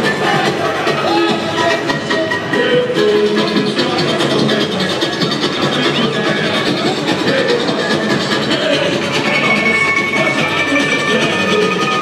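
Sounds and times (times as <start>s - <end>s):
samba drumming: 0.0s - 12.0s.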